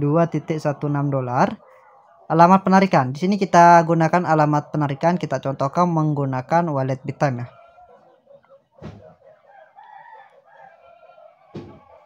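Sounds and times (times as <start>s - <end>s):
soft knocks: 11.5s - 11.9s.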